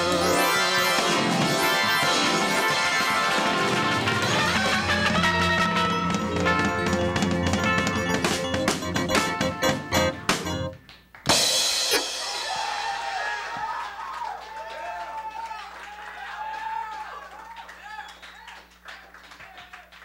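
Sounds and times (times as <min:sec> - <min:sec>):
live band playing: 0:00.0 - 0:12.9
sharp drum hits: 0:11.3 - 0:12.8
cymbal crash ringing: 0:11.4 - 0:13.0.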